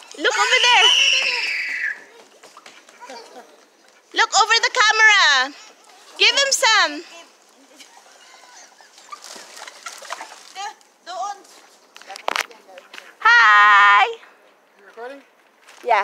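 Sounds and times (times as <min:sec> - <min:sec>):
faint chatter: 0:00.0 - 0:16.0
loud vocal call: 0:00.2 - 0:02.1.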